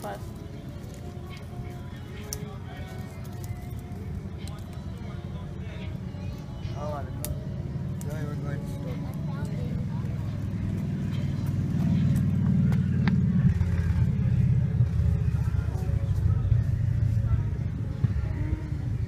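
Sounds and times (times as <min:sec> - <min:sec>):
faint voices: 0:00.0 - 0:19.0
low rumble: 0:00.2 - 0:19.0.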